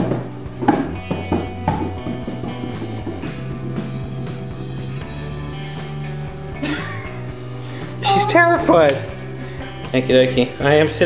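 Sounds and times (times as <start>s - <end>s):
background music with drums: 0.0s - 11.0s.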